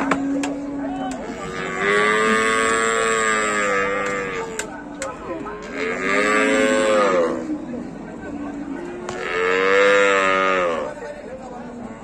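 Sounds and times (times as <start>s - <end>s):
cow mooing: 1.2s - 4.6s, 5.6s - 7.5s, 9.1s - 11.0s.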